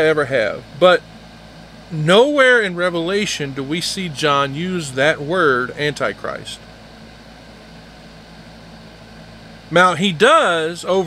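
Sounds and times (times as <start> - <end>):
faint low hum and rumble: 0.0 - 11.0.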